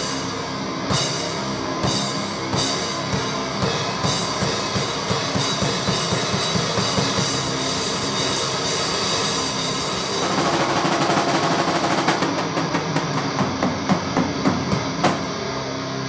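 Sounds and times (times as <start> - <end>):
drum kit: 0.0 - 15.6
bass guitar: 0.0 - 16.0
distorted electric guitars: 0.0 - 16.0.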